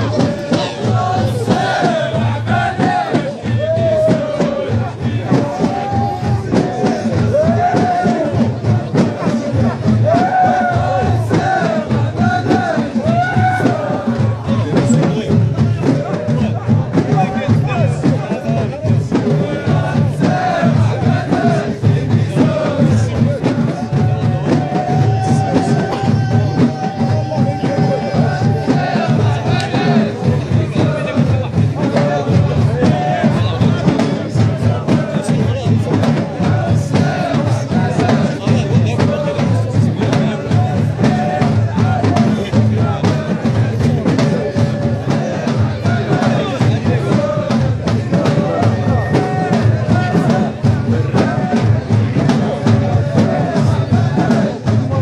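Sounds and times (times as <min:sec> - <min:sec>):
crowd noise: 0:00.0 - 0:55.0
drums beating driving rhythm: 0:00.0 - 0:55.0
men chanting: 0:00.0 - 0:55.0.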